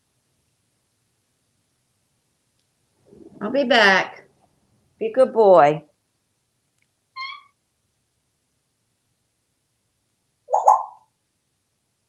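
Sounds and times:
parrot calling: 7.2s - 7.6s, 10.5s - 11.0s.

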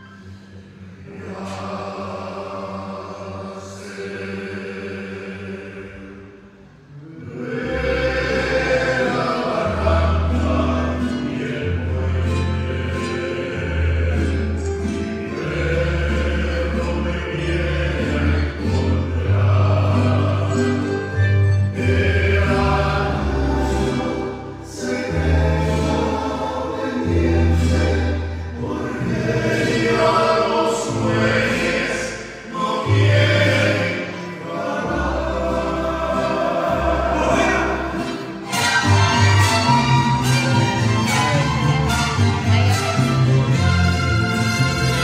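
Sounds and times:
men singing in harmony: 0.0s - 6.3s, 7.0s - 45.0s.

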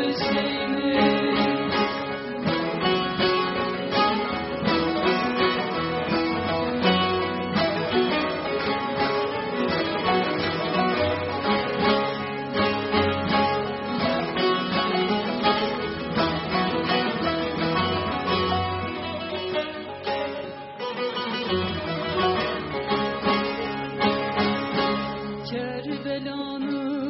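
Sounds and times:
folk ensemble playing: 0.0s - 27.0s
long-necked lutes plucked: 0.0s - 27.0s.

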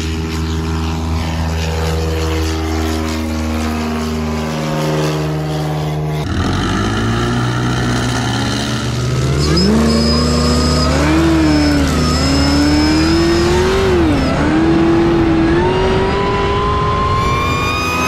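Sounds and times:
car engine idling and revving: 0.0s - 18.0s
high whine: 0.0s - 18.0s
propeller plane engine running: 0.0s - 18.0s.

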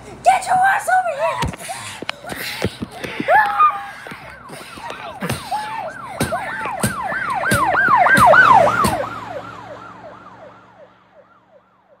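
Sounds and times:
siren yelping: 3.1s - 12.0s.

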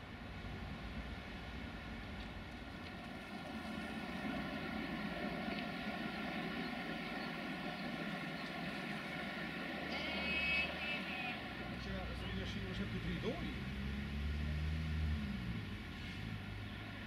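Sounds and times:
train running drone: 0.0s - 14.3s.

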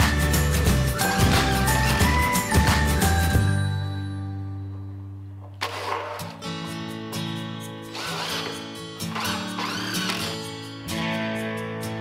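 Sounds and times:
instrumental background music: 0.0s - 12.0s.

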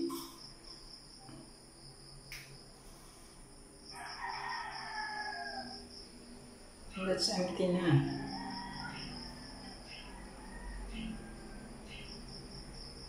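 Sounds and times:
high-pitched insect trill: 0.0s - 13.0s
rooster crowing: 3.8s - 6.0s, 7.8s - 12.4s.

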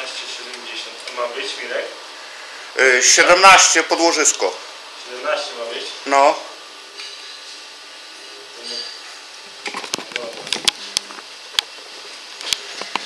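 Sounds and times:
faint workshop hum: 0.0s - 13.0s.

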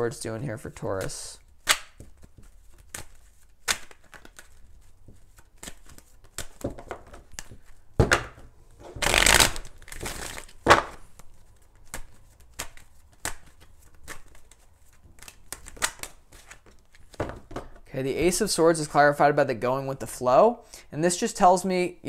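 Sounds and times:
cards riffling: 0.9s - 7.8s, 9.0s - 17.8s
cards tapping and sliding: 0.9s - 17.8s.

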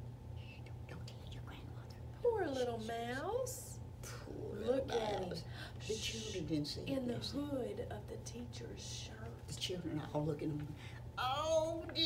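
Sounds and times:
woman whispering: 0.4s - 2.9s.

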